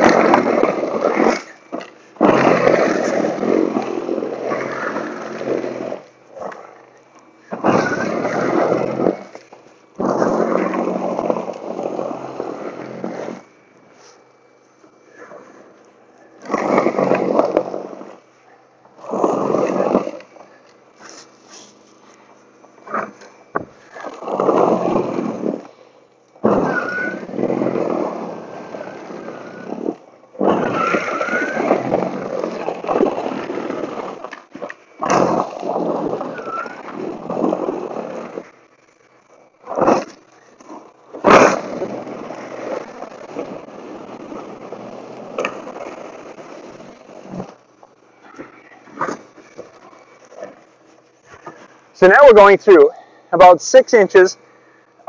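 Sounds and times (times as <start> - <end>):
snow blower running: 0.0 - 6.7, 7.4 - 14.2, 22.9 - 25.8, 26.4 - 38.6, 39.7 - 47.6
auger scraping pavement: 0.0 - 54.8.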